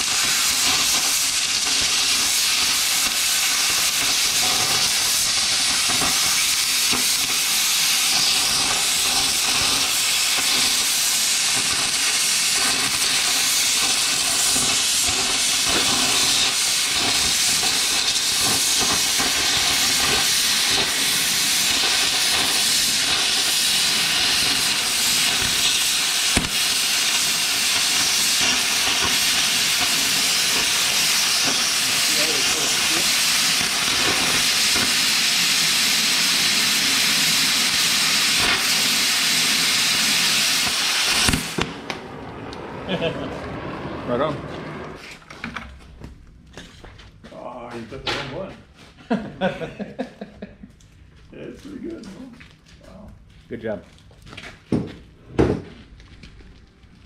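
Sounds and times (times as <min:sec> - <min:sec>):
cutting torch hissing: 0:00.0 - 0:45.2.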